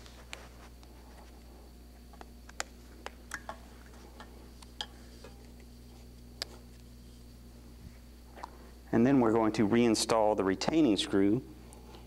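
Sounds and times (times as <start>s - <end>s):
small clicks and light scratches: 0.0s - 6.9s
steady low hum: 0.0s - 12.0s.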